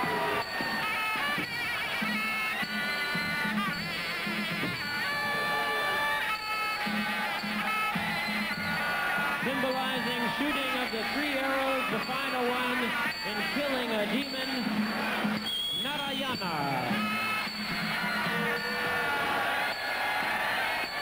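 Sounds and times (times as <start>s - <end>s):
wavering oboe melody: 0.0s - 15.8s, 16.4s - 19.9s.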